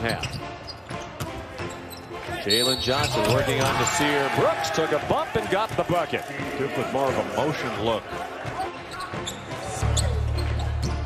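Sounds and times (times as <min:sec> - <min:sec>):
sneakers squeaking on hardwood: 0:00.0 - 0:03.8, 0:08.4 - 0:11.0.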